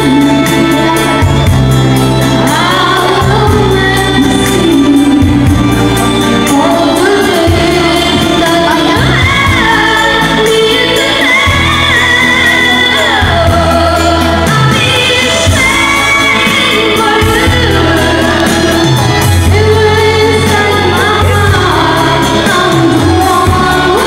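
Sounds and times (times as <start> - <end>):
boy singing pop ballad: 0.0 - 24.0
karaoke backing track: 0.0 - 24.0.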